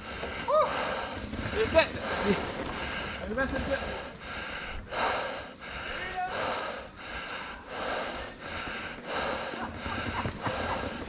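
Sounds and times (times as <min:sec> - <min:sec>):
person panting hard: 0:00.0 - 0:01.5, 0:02.1 - 0:11.0.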